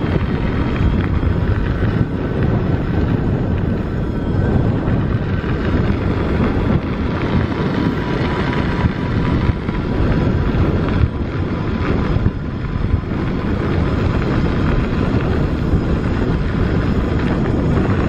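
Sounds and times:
tyres rumbling on gravel: 0.0s - 18.0s
wind buffeting microphone: 0.0s - 18.0s.

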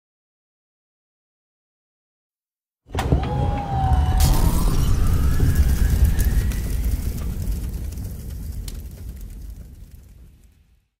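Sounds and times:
deep rumble: 3.4s - 10.6s.

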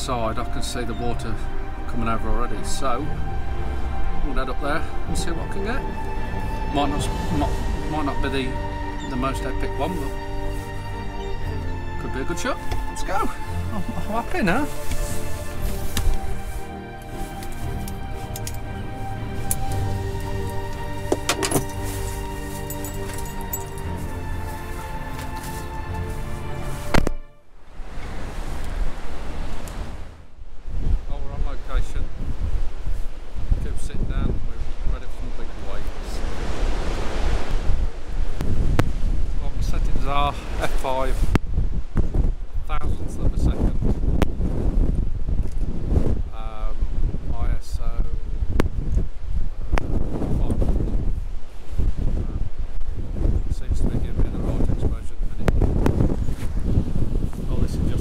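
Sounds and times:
rough surf rushing: 0.0s - 58.0s
wind buffeting microphone: 0.0s - 58.0s.

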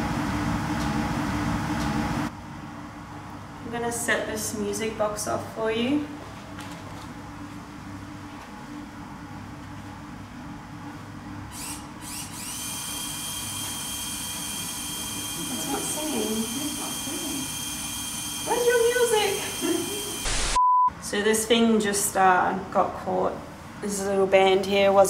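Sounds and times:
small electric motor whining: 11.5s - 20.6s.

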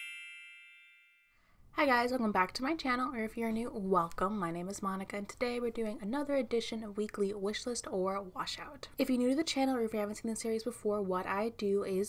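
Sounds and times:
bell-like chime: 0.0s - 1.6s
woman speaking: 1.8s - 12.0s.

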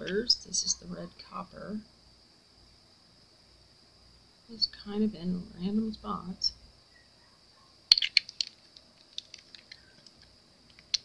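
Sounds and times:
faint ticks: 7.6s - 11.0s
plastic bottle cap clicks: 7.9s - 9.7s.

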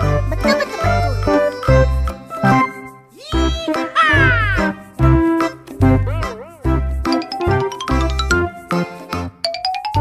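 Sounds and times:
upbeat music with bass beat: 1.3s - 9.3s.

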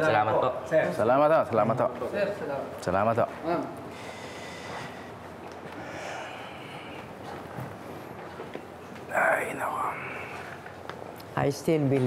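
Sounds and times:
breathy whisper: 3.9s - 7.4s, 9.1s - 10.7s.

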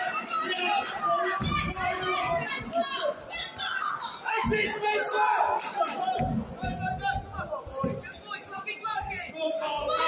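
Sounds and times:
children's voices: 0.0s - 7.5s, 9.2s - 10.0s
crowd shouting: 0.0s - 7.6s, 8.9s - 10.0s.

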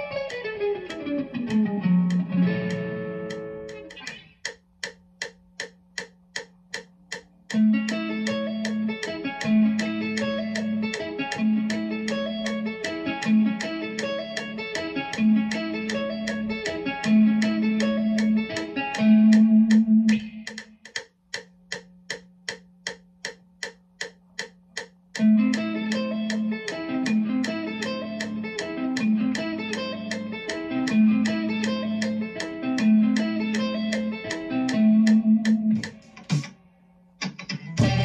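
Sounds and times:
electric guitar chord: 0.0s - 4.2s, 37.8s - 38.0s
electric guitar notes: 0.0s - 4.4s, 7.5s - 20.5s, 25.2s - 36.5s, 37.2s - 38.0s
metronome clicking: 0.0s - 36.6s, 37.2s - 38.0s
faint amp hum: 0.0s - 38.0s.

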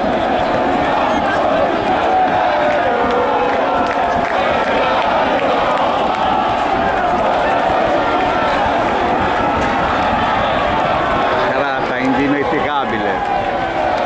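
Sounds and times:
crowd shouting and chanting: 0.0s - 14.0s.

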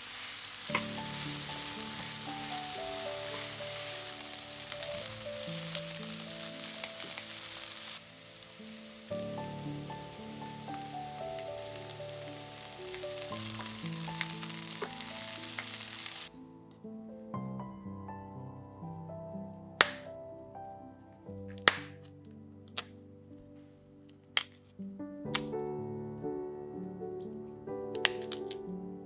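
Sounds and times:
onions sizzling in a frying pan: 0.0s - 16.3s
sharp crackles: 0.0s - 16.3s, 28.0s - 28.6s.

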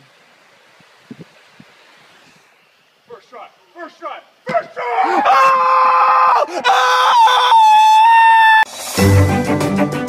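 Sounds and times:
person screaming high-pitched: 4.7s - 8.7s.

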